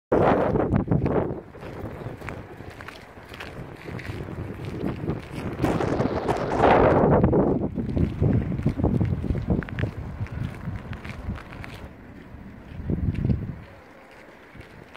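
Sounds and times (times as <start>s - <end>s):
wind buffeting microphone: 0.1s - 14.9s.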